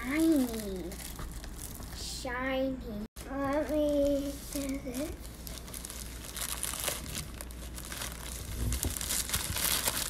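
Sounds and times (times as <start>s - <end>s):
plastic wrap crinkling: 0.0s - 2.1s, 3.2s - 10.0s.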